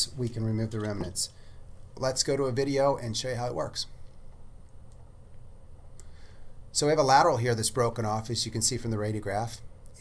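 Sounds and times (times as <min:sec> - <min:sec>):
steady low hum: 0:00.0 - 0:10.0
faint click: 0:04.0 - 0:06.2.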